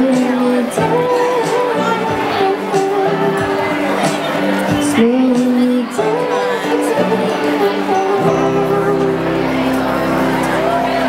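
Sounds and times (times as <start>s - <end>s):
held chord through speaker: 0.0s - 11.0s.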